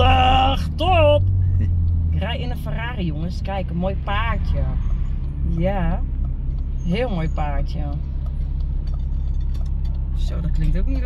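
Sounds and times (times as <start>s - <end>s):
car engine droning inside cabin: 0.0s - 11.0s.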